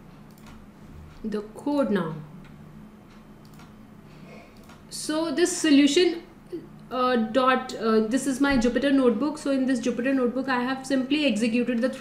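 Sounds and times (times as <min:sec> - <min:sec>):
steady low hum: 0:00.0 - 0:12.0
soft mouse clicks: 0:02.4 - 0:03.8, 0:04.6 - 0:04.8.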